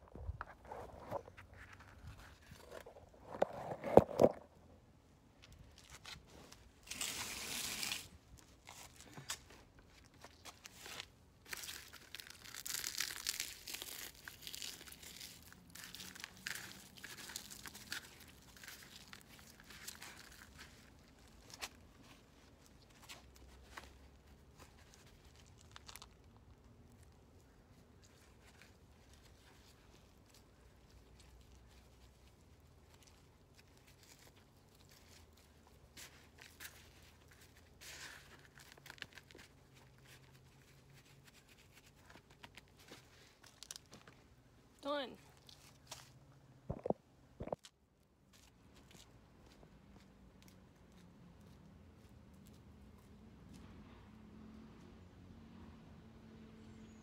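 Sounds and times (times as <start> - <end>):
potting soil rustling and crackling: 0.0 - 4.6, 5.4 - 49.6.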